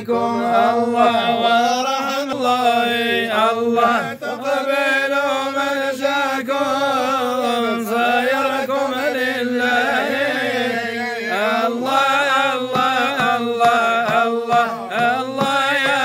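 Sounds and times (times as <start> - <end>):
men chanting together: 0.0 - 16.0.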